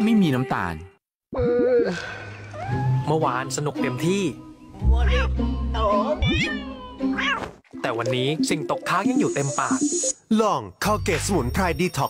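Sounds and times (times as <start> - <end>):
background music: 2.3 - 12.0
cat meowing: 6.1 - 7.5.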